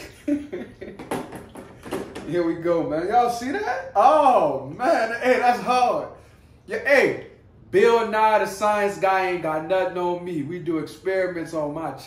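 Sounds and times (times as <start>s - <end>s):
plastic jar knocking and clattering: 0.9s - 2.3s.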